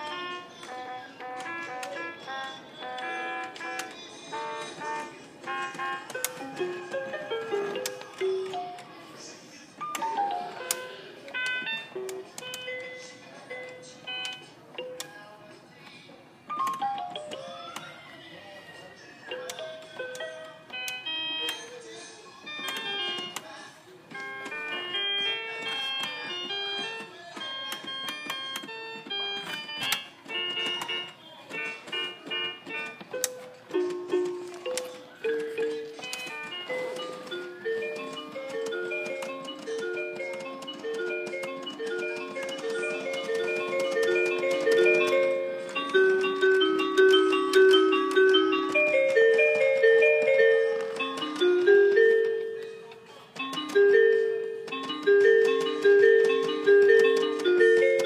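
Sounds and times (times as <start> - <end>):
toy electronic keyboard: 0.0 - 15.4, 16.4 - 58.0.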